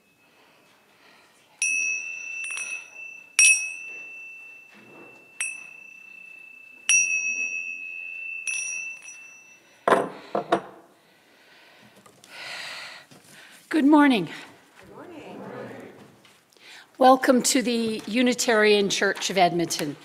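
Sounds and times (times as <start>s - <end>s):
single-pitched chime ringing: 1.6s - 9.8s.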